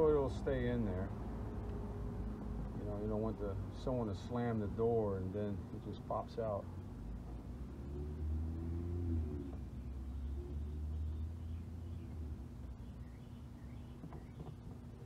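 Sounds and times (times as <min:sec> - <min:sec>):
low steady rumble: 0:00.0 - 0:15.0
faint bird chirps: 0:09.3 - 0:15.0.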